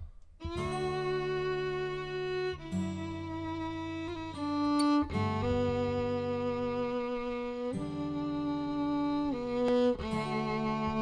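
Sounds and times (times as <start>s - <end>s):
acoustic guitar chords: 0.0s - 11.0s
fiddle playing slow ballad: 0.0s - 11.0s.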